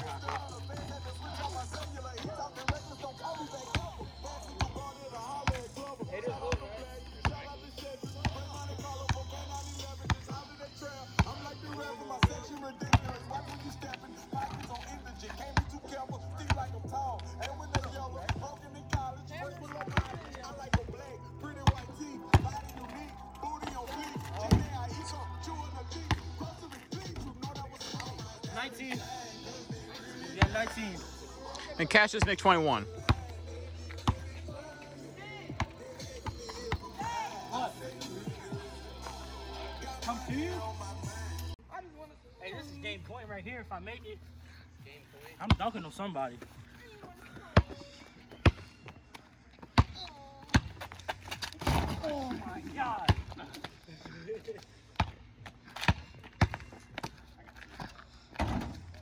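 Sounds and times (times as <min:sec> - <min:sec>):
basketball bouncing on asphalt: 0:00.0 - 0:29.2, 0:30.4 - 0:30.8, 0:32.1 - 0:37.3, 0:45.4 - 0:45.8, 0:46.4 - 0:53.7, 0:54.9 - 0:59.0
music with heavy bass and vocals: 0:00.0 - 0:45.7, 0:49.7 - 0:55.4.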